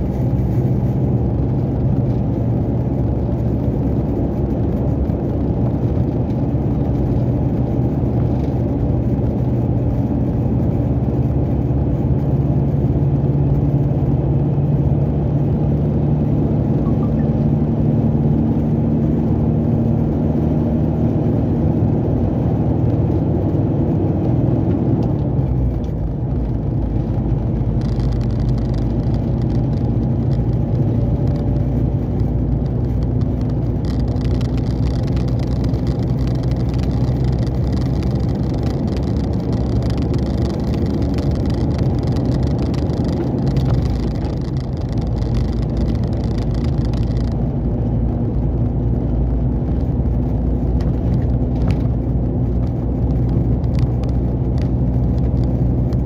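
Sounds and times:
road noise: 0.0s - 56.0s
truck diesel engine: 0.0s - 56.0s.

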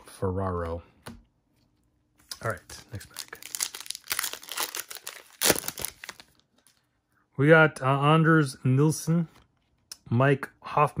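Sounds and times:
plastic wrapper crinkling and tearing: 2.3s - 6.9s.

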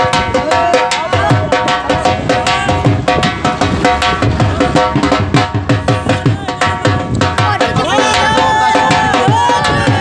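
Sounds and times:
hand-drum strokes: 0.0s - 10.0s.

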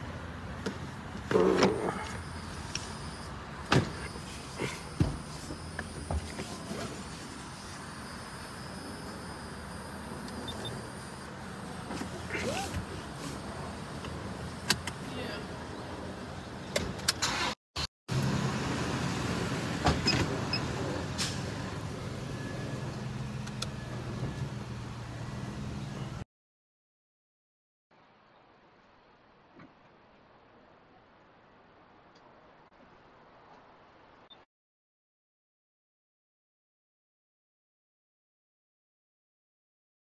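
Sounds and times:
vehicle cabin rumble: 0.0s - 7.8s, 8.4s - 17.5s.

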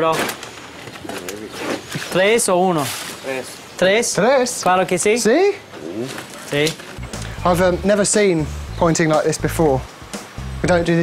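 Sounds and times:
man speaking: 2.1s - 9.9s.

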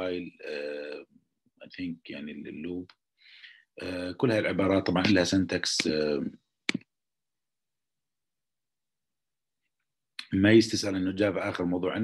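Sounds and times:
man speaking: 0.0s - 3.0s, 3.8s - 6.4s, 10.2s - 12.0s.

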